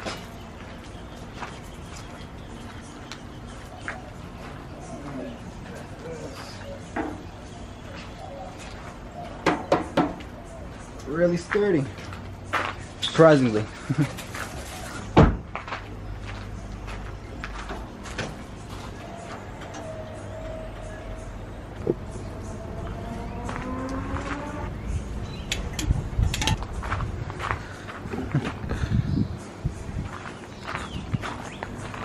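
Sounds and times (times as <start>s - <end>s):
propane canister clicks and knocks: 25.5s - 26.7s.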